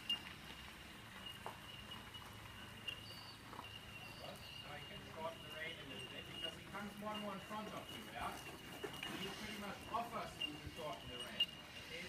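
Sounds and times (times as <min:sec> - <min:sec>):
thin steady high tone: 0:00.9 - 0:12.0.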